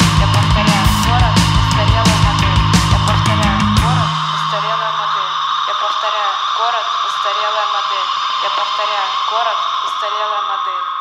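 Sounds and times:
bass note ringing: 0.0s - 5.6s
constant high tone: 0.0s - 11.0s
steady hiss: 0.0s - 11.0s
voice over a radio: 0.0s - 11.0s.

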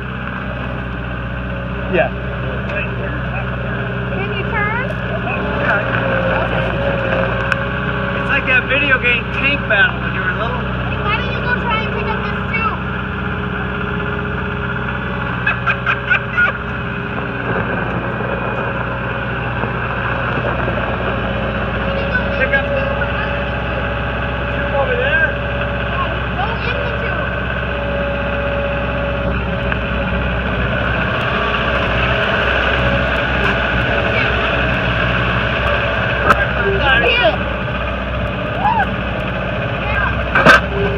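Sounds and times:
diesel loader engine running: 0.0s - 40.9s.

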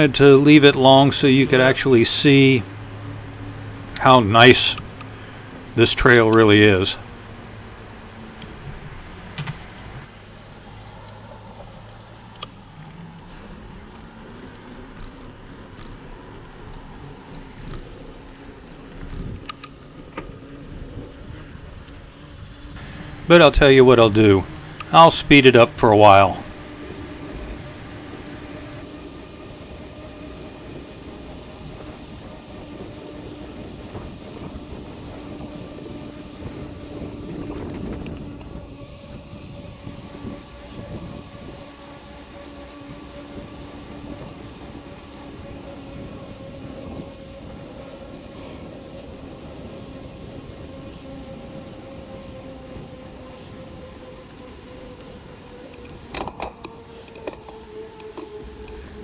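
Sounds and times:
bicycle tyre noise: 0.0s - 59.0s
faint steady hum: 0.0s - 59.0s
wind rush: 22.4s - 56.2s.

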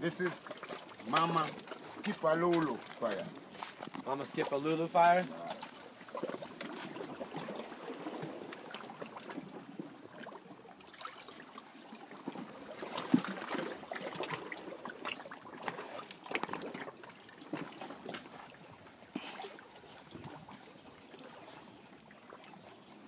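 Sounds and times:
sea water lapping on rocks: 0.0s - 23.0s.

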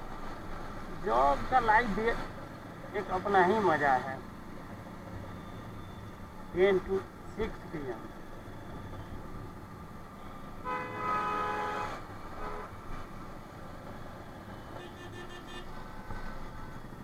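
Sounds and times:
motorcycle engine and road noise: 0.0s - 17.0s
vehicle horn honking: 10.6s - 12.7s, 14.8s - 15.7s.

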